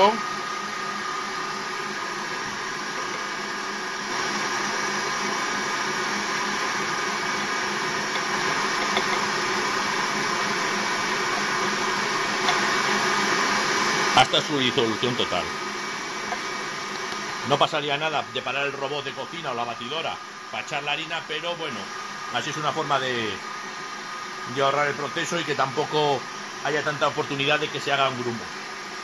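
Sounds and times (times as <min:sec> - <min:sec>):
stand mixer motor whining: 0:00.0 - 0:29.0.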